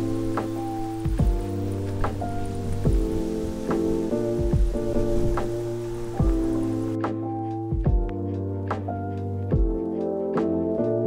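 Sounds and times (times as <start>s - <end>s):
slow kick drum beat: 0.0s - 8.9s, 9.5s - 9.8s
mellow instrumental music: 0.0s - 11.0s.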